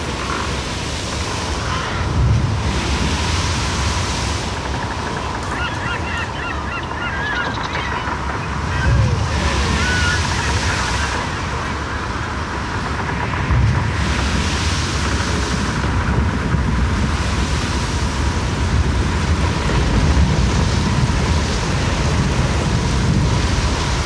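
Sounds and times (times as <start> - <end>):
dense rushing noise: 0.0 - 5.6, 7.5 - 24.0.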